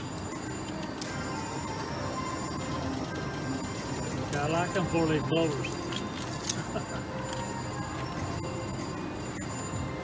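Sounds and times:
slot machine jingles and tones: 0:00.0 - 0:10.0.

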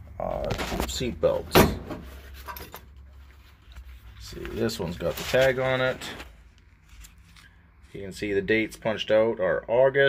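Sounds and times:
faint rubbing and handling noises: 0:02.0 - 0:08.4.

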